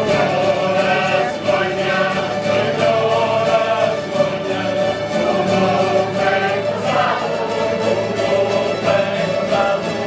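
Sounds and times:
group of voices singing: 0:00.0 - 0:10.0
strummed guitars: 0:00.0 - 0:10.0.

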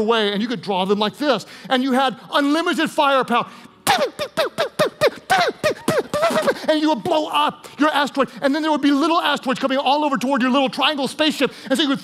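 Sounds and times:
man imitating laser shots: 0:03.9 - 0:06.7.

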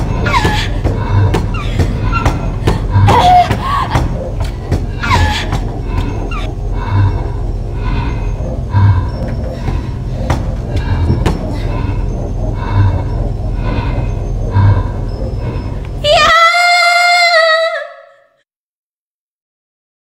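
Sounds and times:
deep thuds: 0:00.0 - 0:16.1.

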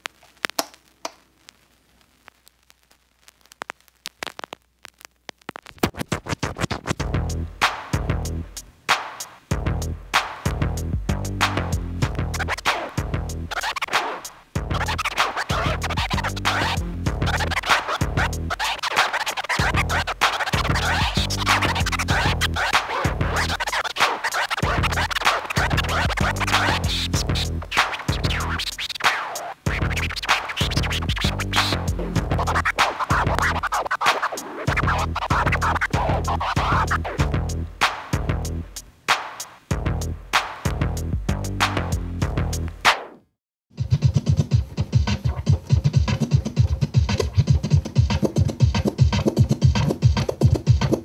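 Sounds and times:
turntable scratching: 0:00.0 - 0:51.0
hip hop beat: 0:05.8 - 0:43.2, 0:43.8 - 0:51.0.

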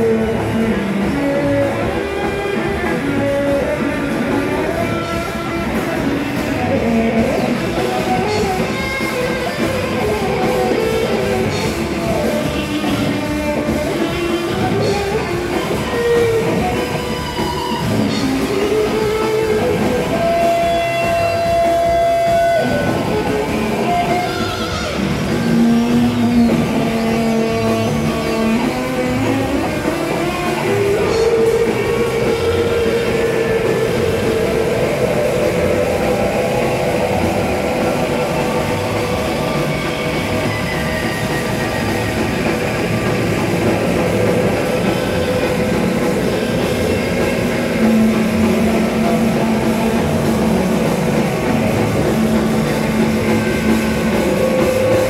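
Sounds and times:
droning electric guitar: 0:00.0 - 0:55.0.

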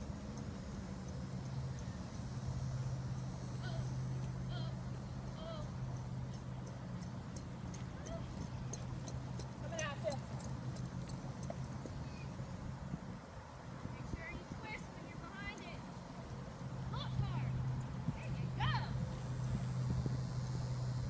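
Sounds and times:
steady low hum: 0:00.0 - 0:21.0
horse hoofbeats on dirt: 0:03.1 - 0:12.4.

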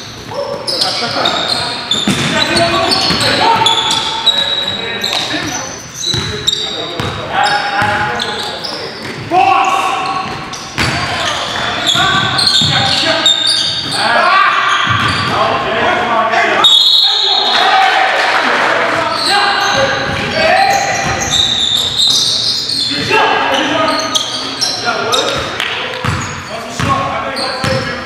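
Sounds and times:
sneakers squeaking: 0:00.0 - 0:15.7, 0:18.9 - 0:28.0
players' voices: 0:00.0 - 0:28.0
basketball bouncing on wooden floor: 0:02.0 - 0:03.4, 0:10.2 - 0:11.0, 0:12.1 - 0:12.9, 0:26.0 - 0:27.0.

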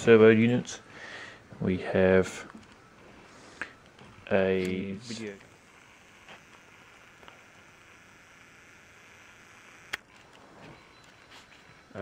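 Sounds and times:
sharp click: 0:09.8 - 0:10.1.

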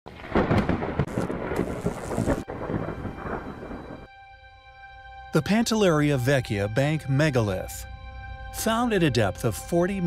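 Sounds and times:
heavy rain: 0:00.1 - 0:04.1
thunder rumbling: 0:00.1 - 0:04.2.

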